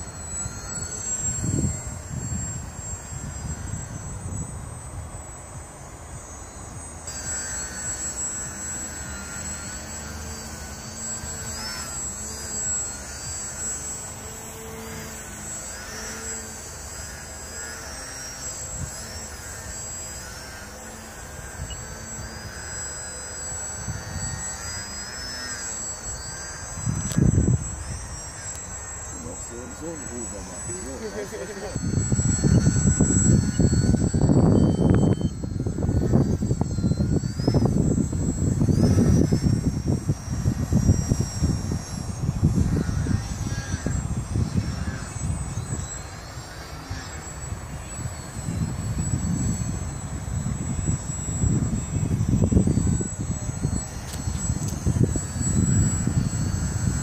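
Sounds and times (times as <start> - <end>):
wind buffeting microphone: 0.0 - 7.2, 26.6 - 28.5, 29.1 - 57.0
model plane motor whine: 0.0 - 57.0.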